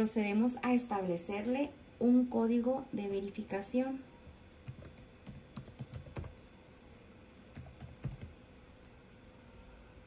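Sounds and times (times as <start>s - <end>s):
computer keyboard typing: 4.6s - 6.5s, 7.5s - 8.3s.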